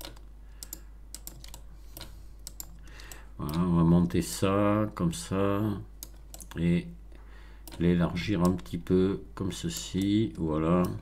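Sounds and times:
keyboard and mouse clicks: 0:00.0 - 0:03.7, 0:06.0 - 0:06.6, 0:07.6 - 0:08.8, 0:09.7 - 0:11.0
faint low hum: 0:00.0 - 0:11.0.

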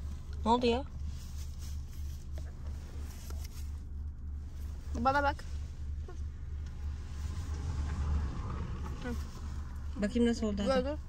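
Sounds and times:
car engine rumble: 0:00.0 - 0:11.0
road noise inside car: 0:00.0 - 0:11.0.

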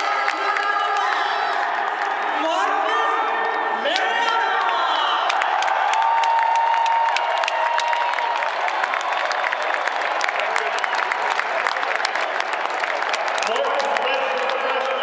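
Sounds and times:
crowd applauding: 0:00.0 - 0:15.0.

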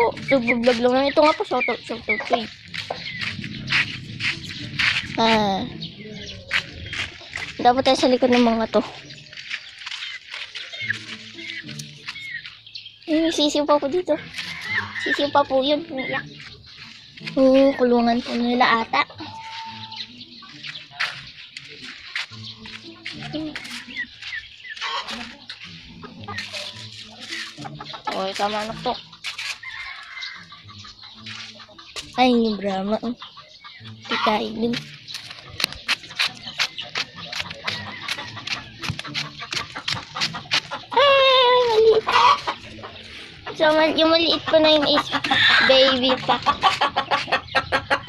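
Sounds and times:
chickens clucking: 0:00.0 - 0:48.0.

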